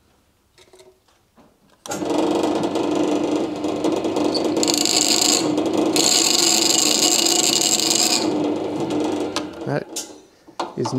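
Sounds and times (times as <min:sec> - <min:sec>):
drill bit chattering into steel: 0:04.3 - 0:08.5.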